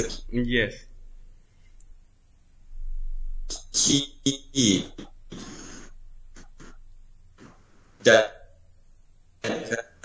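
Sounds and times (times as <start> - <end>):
low rumble: 0.0 - 7.4
breathy vocal burst: 3.5 - 6.8.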